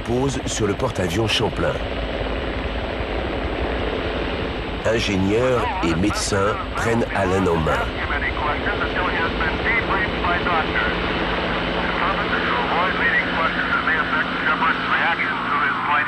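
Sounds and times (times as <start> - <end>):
helicopter engine drone: 0.0 - 16.0.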